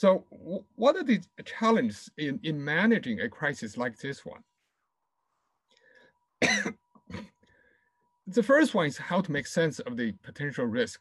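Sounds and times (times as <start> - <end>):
man coughing: 6.4 - 7.4.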